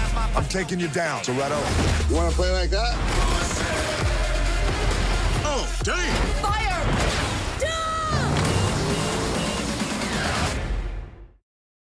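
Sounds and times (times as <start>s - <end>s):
trailer music: 0.0s - 11.4s
action sound effects: 1.6s - 11.2s
woman screaming: 7.6s - 8.3s.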